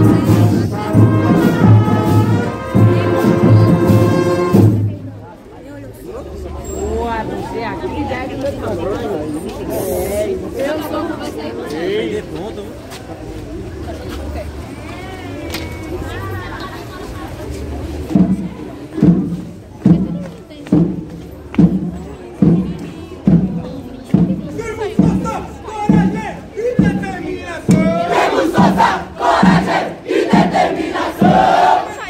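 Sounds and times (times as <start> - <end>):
chatter of voices: 0.0 - 32.0
group shouting a rhythmic chant: 27.7 - 32.0.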